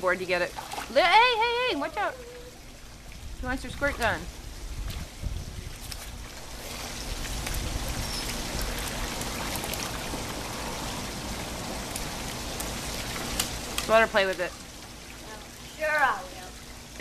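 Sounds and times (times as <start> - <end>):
pool water splashing and lapping: 0.0 - 17.0.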